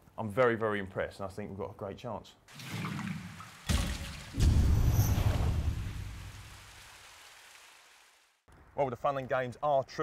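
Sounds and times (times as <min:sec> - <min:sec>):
deep boom with splashing hiss: 0:03.7 - 0:06.8.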